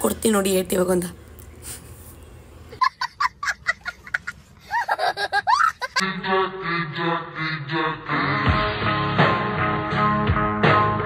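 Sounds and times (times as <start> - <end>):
child laughing: 2.7 - 6.0.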